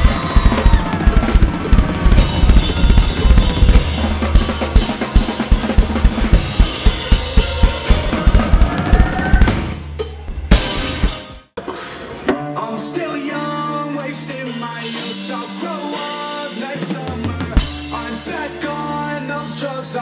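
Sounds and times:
drum kit played fast: 0.0s - 13.0s, 14.0s - 19.1s.

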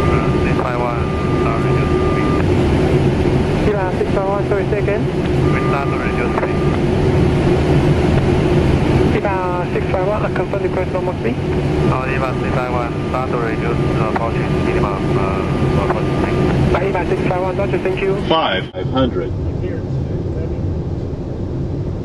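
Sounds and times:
cockpit airflow and engine hum: 0.0s - 22.0s
constant low tone: 0.0s - 22.0s
person talking: 3.7s - 6.7s, 9.2s - 20.6s.

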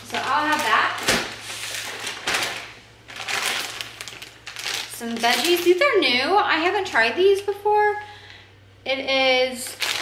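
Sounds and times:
plastic bags crinkling: 0.0s - 6.0s, 9.6s - 10.0s.

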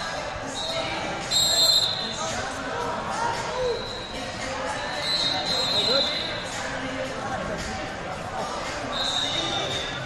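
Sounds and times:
crowd chatter: 0.0s - 10.0s
referee's whistle: 0.5s - 2.2s, 5.0s - 6.5s, 8.9s - 10.0s.

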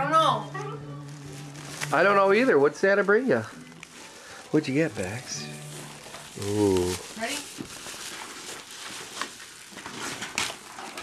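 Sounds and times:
gift wrapping rustling: 0.2s - 11.0s.

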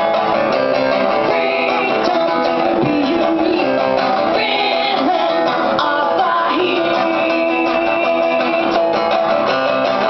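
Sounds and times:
live punk band music: 0.0s - 10.0s
strummed amplified acoustic guitar: 0.0s - 10.0s.

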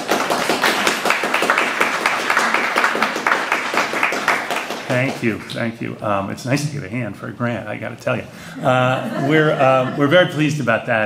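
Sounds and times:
crowd applauding: 0.0s - 5.7s.

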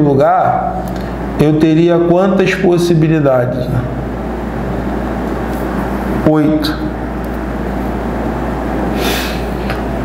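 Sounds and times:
constant low hum: 0.0s - 10.0s.

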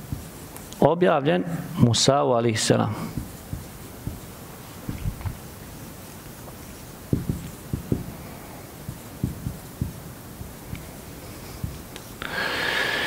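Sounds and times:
marker scratching on whiteboard: 3.1s - 8.1s
marker knocking on whiteboard: 3.2s - 4.3s, 7.1s - 8.1s, 8.8s - 10.6s.

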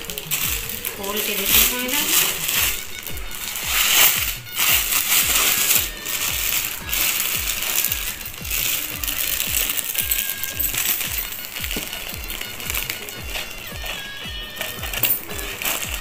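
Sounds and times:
background music with low beat: 0.0s - 16.0s
bangles clinking and jingling: 0.0s - 16.0s
plastic packaging crinkling: 0.0s - 16.0s.

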